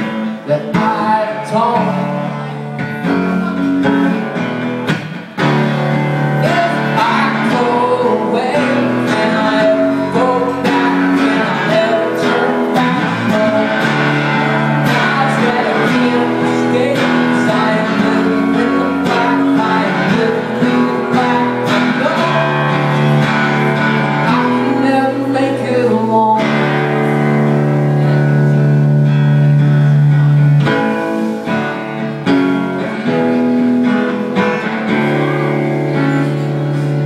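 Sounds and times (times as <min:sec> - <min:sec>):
live rock band playing: 0:00.0 - 0:37.0
strummed acoustic guitar chords: 0:00.0 - 0:37.0.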